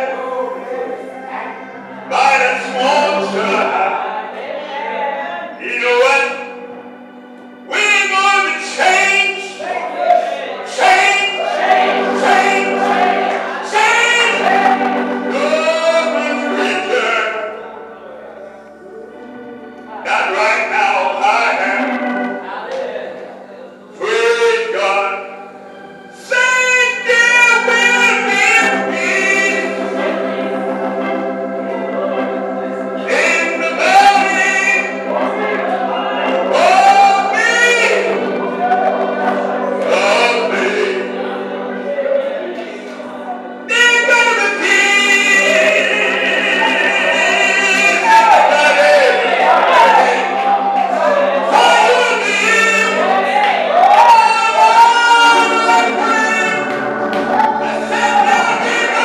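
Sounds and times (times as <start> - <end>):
gospel singing: 0.0 - 59.0
pulsing organ chord: 0.0 - 59.0.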